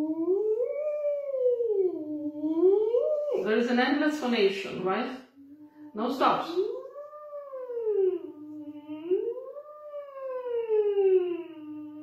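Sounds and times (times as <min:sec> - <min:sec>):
woman singing a gliding vocal siren: 0:07.8 - 0:09.6.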